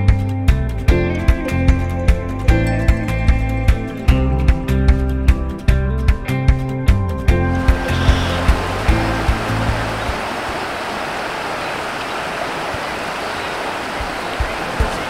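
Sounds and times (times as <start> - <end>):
background music with beat: 0.0 - 10.0
river rapids rushing: 7.5 - 15.0.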